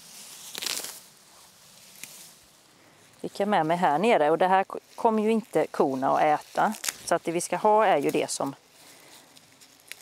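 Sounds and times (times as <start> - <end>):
grass rustling as pulled: 0.0 - 10.0.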